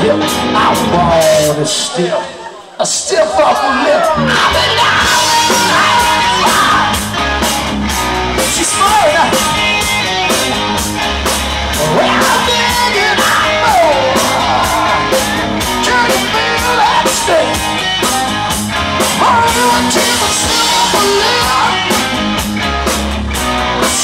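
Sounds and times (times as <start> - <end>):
live rock band playing: 0.0 - 2.2, 3.3 - 24.0
bending guitar or vocal lines: 0.0 - 24.0.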